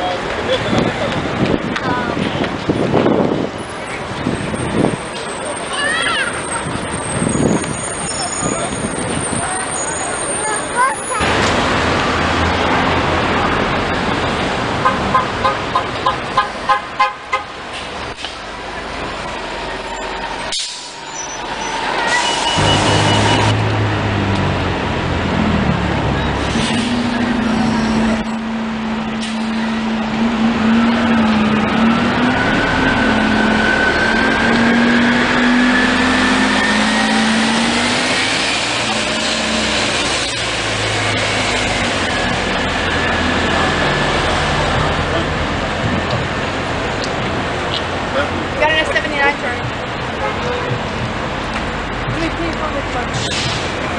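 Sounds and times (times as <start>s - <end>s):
street traffic: 0.0s - 53.9s
bus whine climbing in pitch: 18.8s - 47.2s
short beeps: 22.2s - 23.6s.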